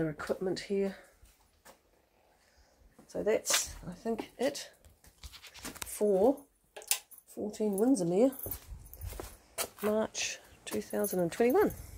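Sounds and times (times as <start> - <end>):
person speaking: 5.7 - 6.4, 7.3 - 9.1, 9.7 - 11.9.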